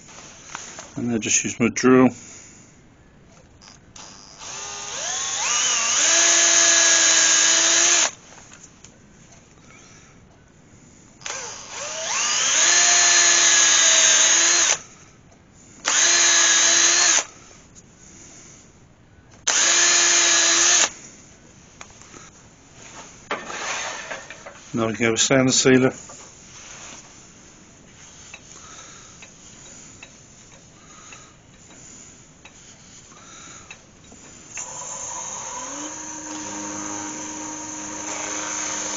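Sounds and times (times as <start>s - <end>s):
electric drill motor whine: 3.6s - 8.2s, 11.2s - 14.8s, 15.8s - 17.3s, 19.5s - 21.0s, 34.5s - 38.9s.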